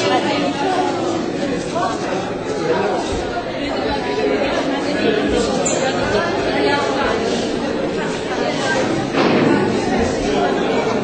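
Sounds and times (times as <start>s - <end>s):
crowd chatter in a large hall: 0.0s - 11.0s.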